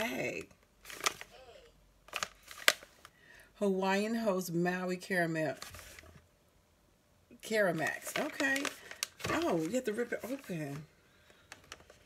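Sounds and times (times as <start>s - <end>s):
bag crackling: 7.8s - 10.5s.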